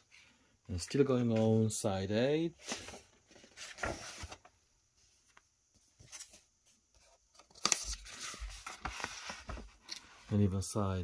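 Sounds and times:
paper pages turning: 2.6 - 4.5, 7.0 - 10.1.

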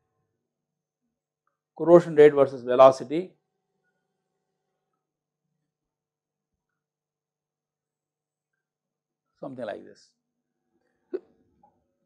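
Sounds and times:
man speaking: 1.8 - 3.3, 9.4 - 10.0.

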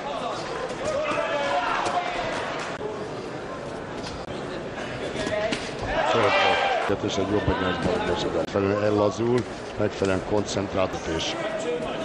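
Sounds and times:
crowd noise and voices: 0.0 - 12.0.

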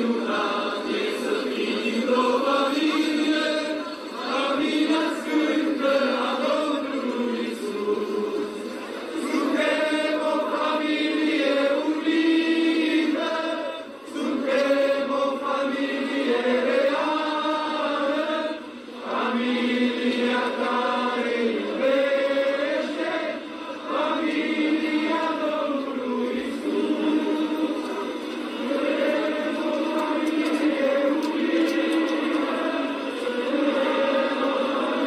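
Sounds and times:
group of voices chanting: 0.0 - 35.0.

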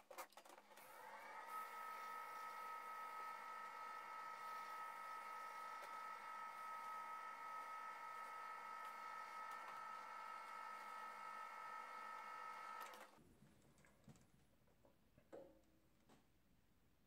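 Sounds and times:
lathe motor whining: 0.8 - 13.2.

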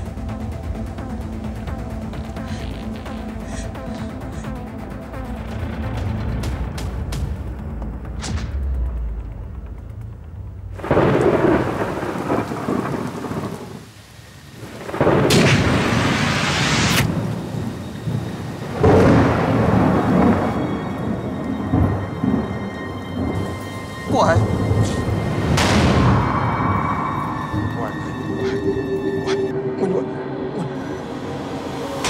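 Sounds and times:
heavy rain: 0.0 - 7.4, 10.0 - 32.0
loud thunderclaps: 10.7 - 13.9, 14.6 - 23.6, 24.4 - 27.6.

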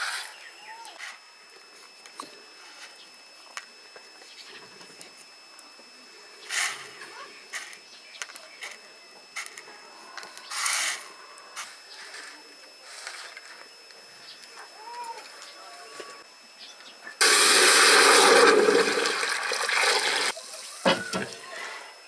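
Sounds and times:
water pouring into a metal pot: 17.2 - 20.3.

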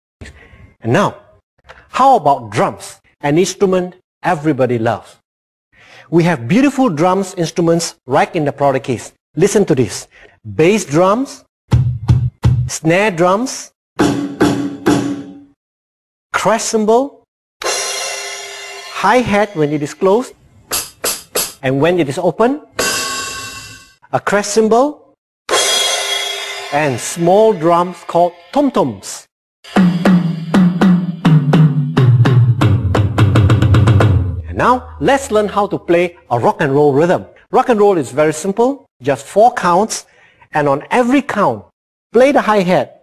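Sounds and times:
electronic snare drum hits: 14.0 - 15.5, 20.7 - 21.6, 29.7 - 34.4.

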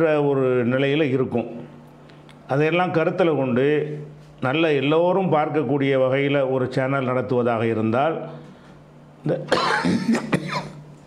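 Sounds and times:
man coughing: 9.4 - 10.9.

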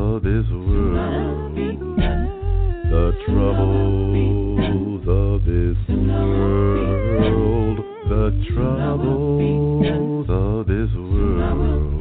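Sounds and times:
a cappella vocal group singing: 0.0 - 12.0
deep bass voice: 0.0 - 12.0.

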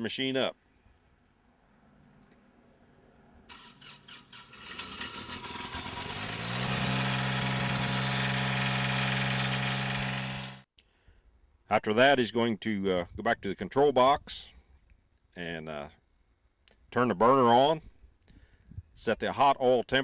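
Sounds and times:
diesel engine running: 3.5 - 10.6
engine starter cranking: 3.5 - 10.6.

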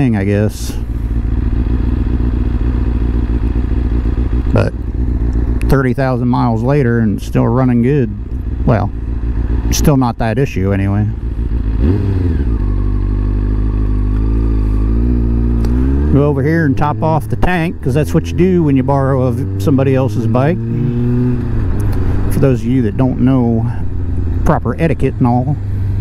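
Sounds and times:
motorcycle engine idling: 0.0 - 26.0.

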